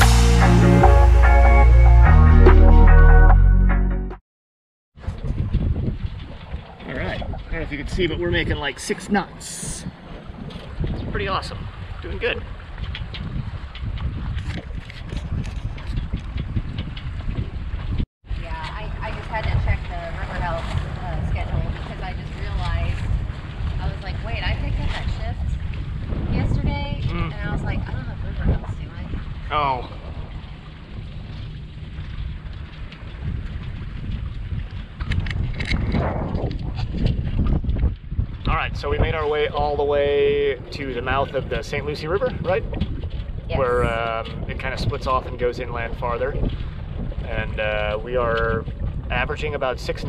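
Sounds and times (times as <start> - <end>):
water splashing along hull: 5.0 - 50.0
wind buffeting microphone: 5.0 - 50.0.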